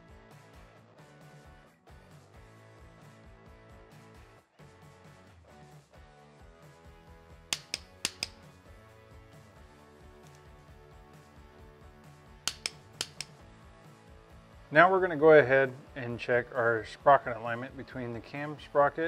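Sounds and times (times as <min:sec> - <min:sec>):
background music: 0:00.0 - 0:19.0
torque wrench clicks: 0:07.6 - 0:08.4, 0:12.5 - 0:13.3.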